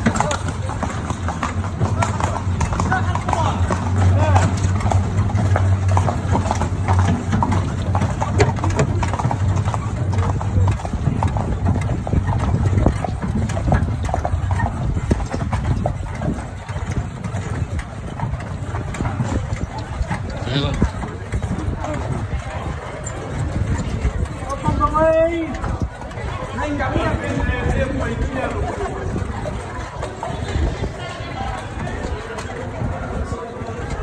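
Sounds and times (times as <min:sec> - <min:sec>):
horse hooves clip-clopping: 0:00.0 - 0:34.0.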